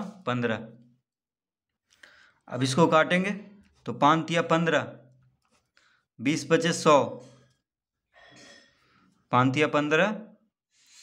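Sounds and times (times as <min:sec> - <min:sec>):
man speaking: 0:00.0 - 0:00.8, 0:02.5 - 0:05.1, 0:06.2 - 0:07.4
faint breath: 0:01.9 - 0:02.4, 0:05.7 - 0:06.1.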